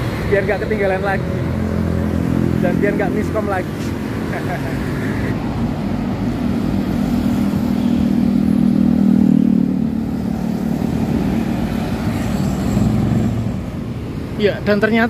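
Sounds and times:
motorcycles driving past: 0.0 - 13.9.

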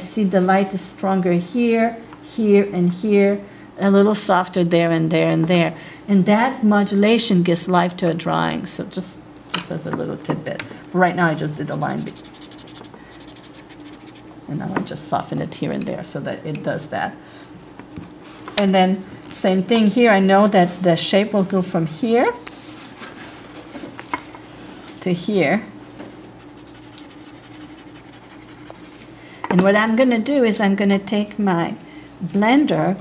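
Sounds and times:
drawing stick scratching paper: 12.0 - 14.2, 26.2 - 29.0.

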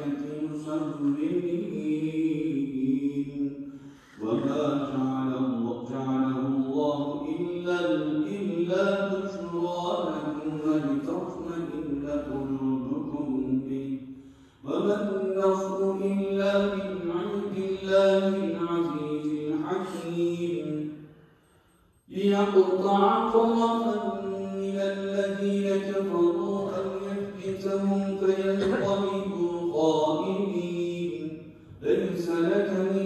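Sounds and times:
man chanting melodically: 0.0 - 21.0, 22.0 - 33.0.

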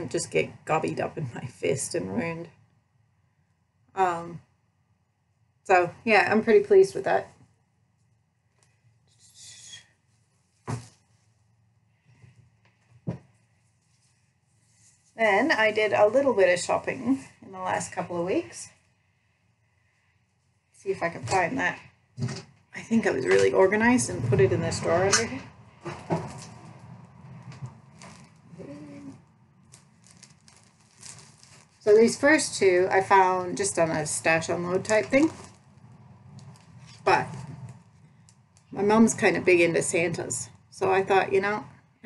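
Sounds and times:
soft rustling: 7.2 - 16.0, 25.0 - 38.8
fabric put down thump: 10.6 - 11.0.

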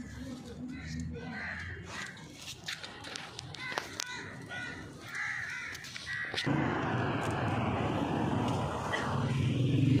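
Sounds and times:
vehicle engine humming: 6.4 - 10.0.

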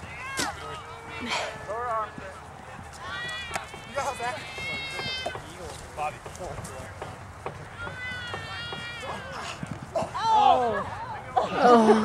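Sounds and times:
players calling out: 0.0 - 12.0.

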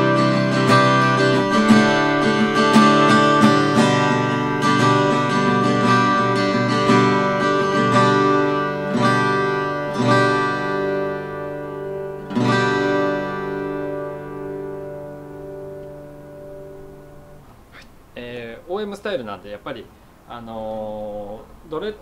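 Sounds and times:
fingerstyle acoustic guitar chords: 0.0 - 18.2.

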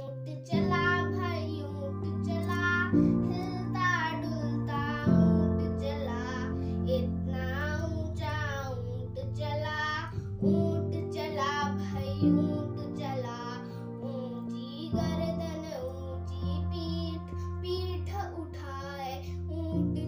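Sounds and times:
girl singing: 0.0 - 20.0
sustained instrumental chords: 0.6 - 18.0.

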